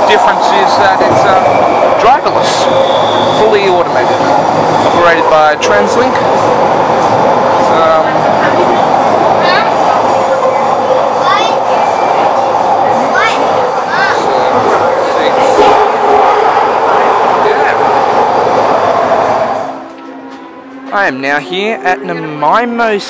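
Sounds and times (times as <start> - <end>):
train car running noise: 0.0 - 21.0.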